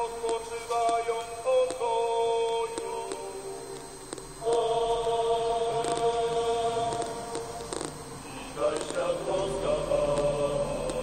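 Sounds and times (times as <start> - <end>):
chant-like singing: 0.0 - 3.8, 4.4 - 11.0.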